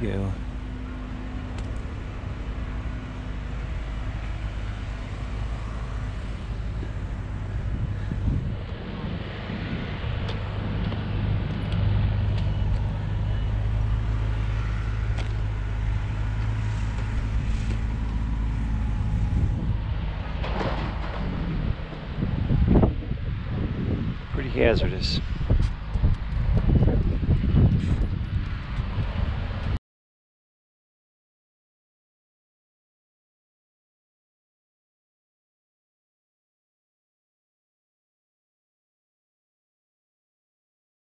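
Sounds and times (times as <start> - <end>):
engine humming: 0.0 - 29.8.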